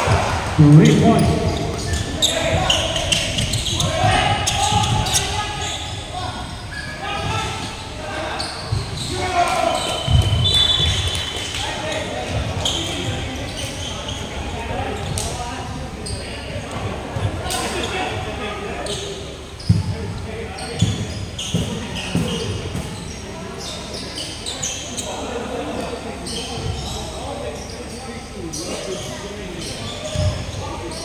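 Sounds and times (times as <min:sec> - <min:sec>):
players' voices echoing: 0:00.0 - 0:31.0.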